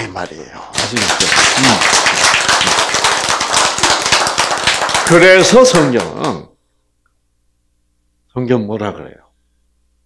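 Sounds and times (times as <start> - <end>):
crowd applauding: 0.7 - 6.5.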